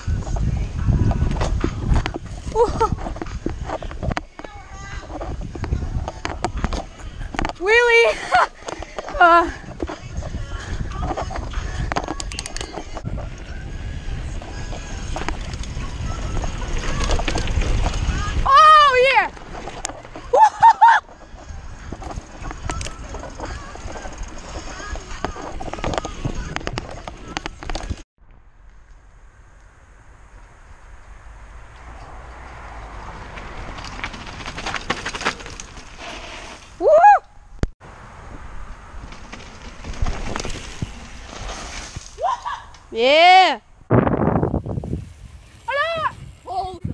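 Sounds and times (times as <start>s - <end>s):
wind on microphone: 0.0s - 7.7s, 9.0s - 28.0s, 43.6s - 46.9s
bike rattling over rough ground: 0.0s - 36.8s, 37.9s - 43.3s, 44.0s - 46.9s
tyre noise on dirt: 0.0s - 46.9s
person shouting: 36.8s - 37.2s, 42.2s - 43.6s, 45.7s - 46.9s.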